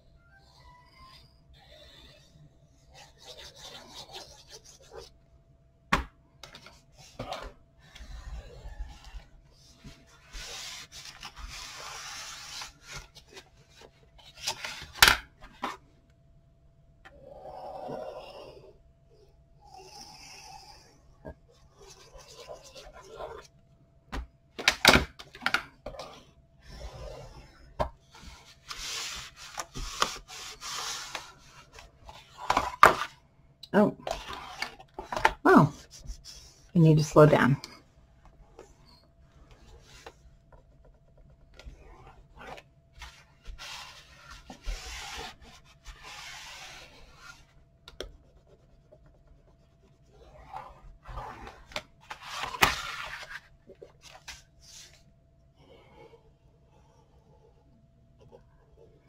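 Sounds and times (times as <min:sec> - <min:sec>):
paper being rubbed with a tool: 0:02.8 - 0:05.1, 0:10.1 - 0:13.4, 0:28.1 - 0:31.8, 0:41.8 - 0:47.5.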